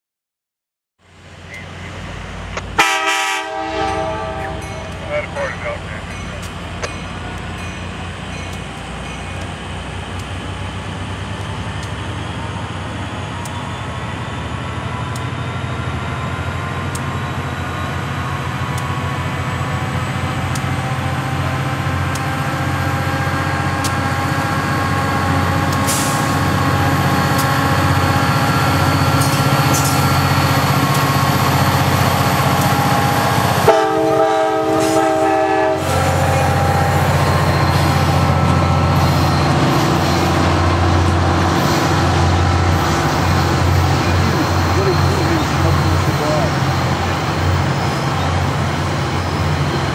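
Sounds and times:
diesel locomotive engine drone: 1.0 - 49.9
passenger coaches rolling past: 1.1 - 49.9
train horn blast: 2.8 - 5.0, 33.6 - 37.1.

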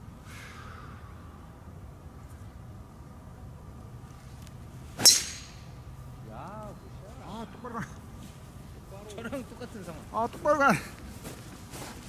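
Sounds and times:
golf club striking ball: 5.0 - 5.8.

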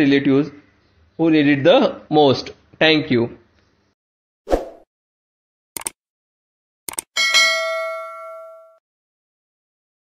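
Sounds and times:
quick double click: 6.9 - 7.1
notification bell chime: 7.2 - 8.8.

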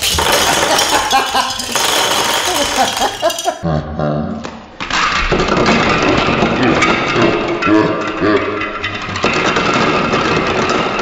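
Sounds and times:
plastic blocks clattering on table: 0.0 - 3.6, 8.6 - 11.0
people laughing: 0.4 - 4.4.

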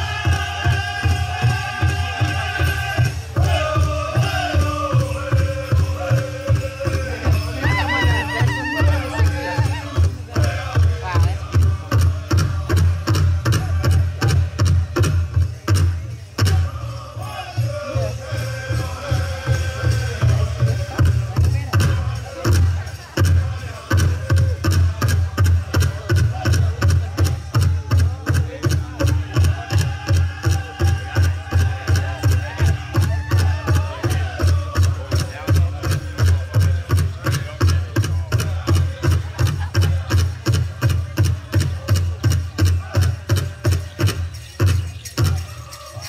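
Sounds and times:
large drum beating: 0.0 - 45.5
voices singing: 0.0 - 46.0.

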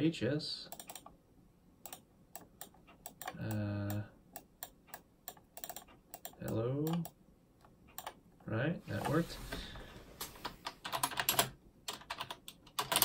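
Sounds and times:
keyboard and mouse clicks: 0.7 - 1.2, 1.8 - 8.2, 10.2 - 13.0
person speaking: 3.0 - 4.6, 6.2 - 7.2, 8.4 - 10.1.

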